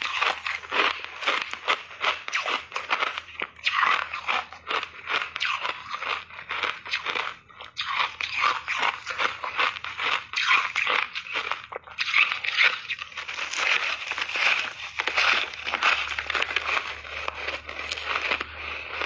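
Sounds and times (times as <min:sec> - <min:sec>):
ice being chewed: 0:00.0 - 0:19.0.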